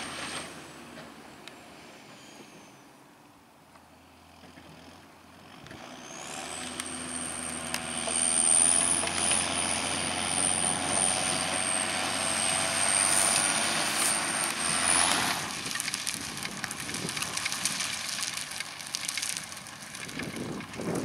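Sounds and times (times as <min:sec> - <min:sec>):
tractor diesel engine running: 0:03.8 - 0:21.0.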